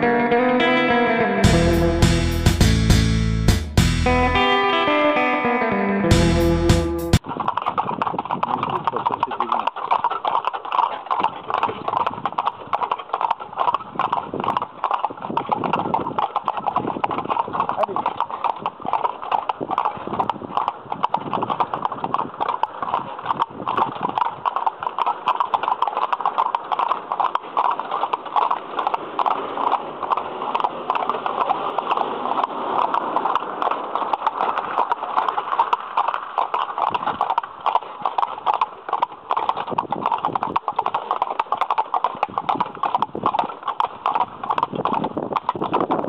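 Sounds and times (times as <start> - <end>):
horse hooves clip-clopping on pavement: 0.0 - 46.0.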